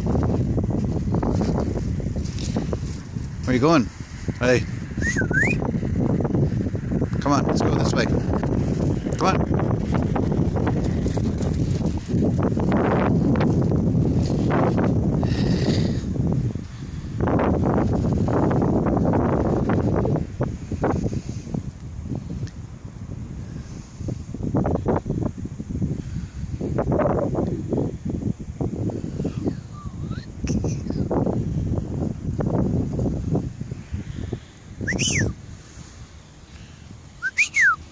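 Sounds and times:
footsteps on muddy track: 0:00.0 - 0:03.6
wind rumbling on microphone: 0:00.0 - 0:37.9.

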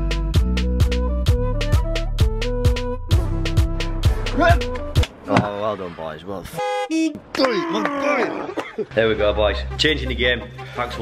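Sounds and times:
voice: 0:05.3 - 0:11.0
buzzing horn toot: 0:06.5 - 0:07.2.

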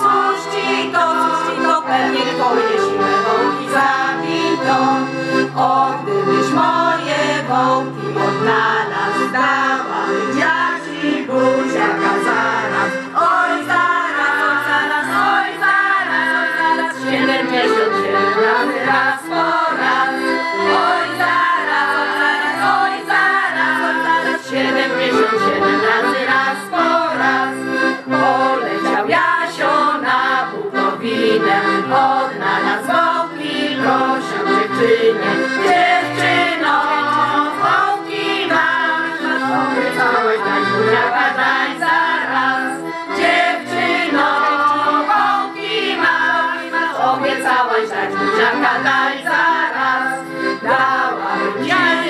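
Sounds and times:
accordion playing folk dance tune: 0:00.0 - 0:52.0
women singing together: 0:00.0 - 0:52.0
instrumental dance accompaniment: 0:40.9 - 0:52.0.

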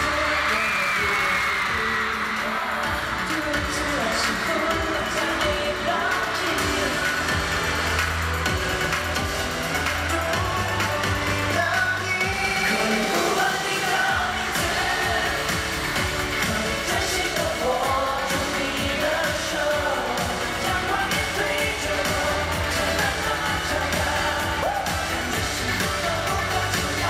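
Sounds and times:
pop song singing: 0:00.0 - 0:27.0
steady bass line: 0:00.0 - 0:27.0.

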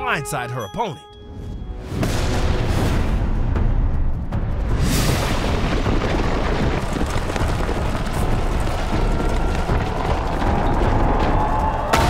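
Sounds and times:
rushing rumbling sandstorm: 0:02.8 - 0:12.0.

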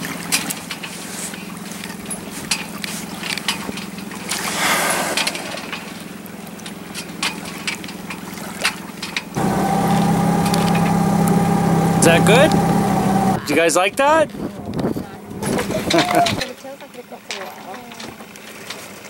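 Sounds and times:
boat engine running: 0:00.0 - 0:16.6
water slapping against hull: 0:00.0 - 0:19.0
engine whine: 0:09.4 - 0:13.6.

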